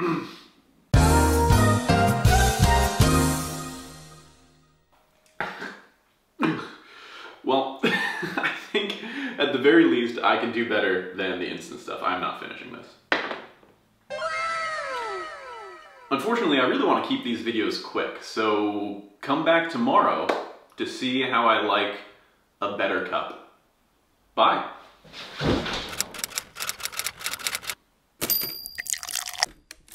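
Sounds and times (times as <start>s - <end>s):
comic falling tones: 14.1s - 16.8s
sudden thunk: 25.4s - 25.9s
typewriter key clicks: 25.9s - 27.8s.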